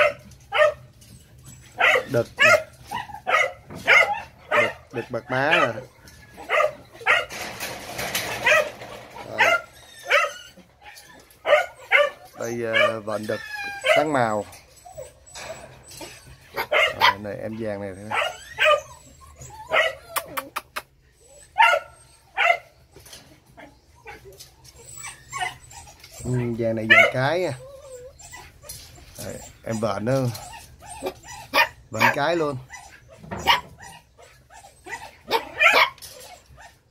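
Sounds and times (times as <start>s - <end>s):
puppies barking and yipping: 0.0s - 36.9s.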